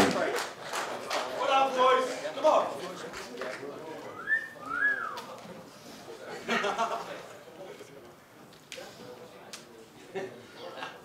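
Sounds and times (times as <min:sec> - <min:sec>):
person wolf whistling: 0:04.2 - 0:05.2.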